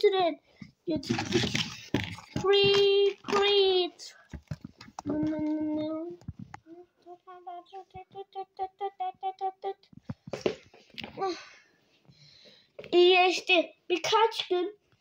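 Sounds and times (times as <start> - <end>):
child making vocal sound effects: 0.0 - 4.3, 5.0 - 9.9, 11.1 - 11.6.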